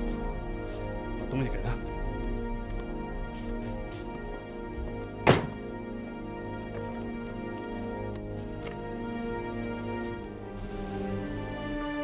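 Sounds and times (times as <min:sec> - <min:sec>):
background music: 0:00.0 - 0:12.0
box set down on table: 0:05.2 - 0:05.6.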